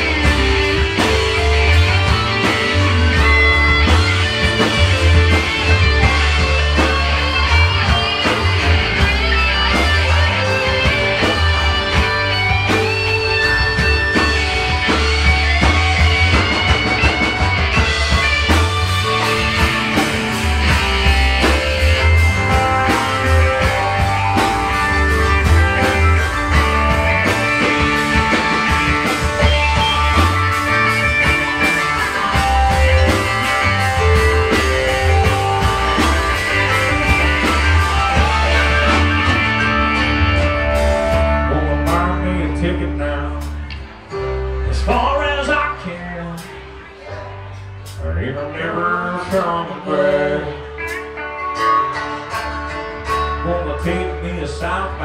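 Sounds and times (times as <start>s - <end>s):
drum kit beat: 0.0s - 44.0s
bass: 0.0s - 55.0s
electric lead guitar: 0.0s - 55.0s
keyboard: 0.0s - 55.0s.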